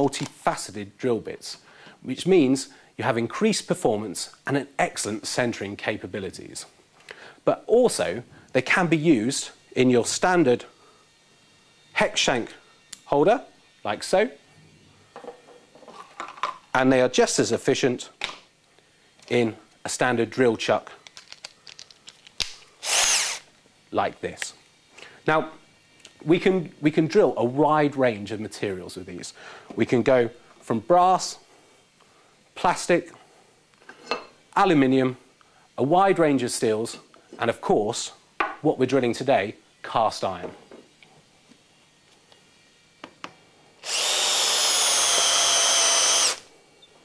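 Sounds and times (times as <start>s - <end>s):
drill motor spinning up: 22.8s - 23.5s, 43.8s - 46.5s.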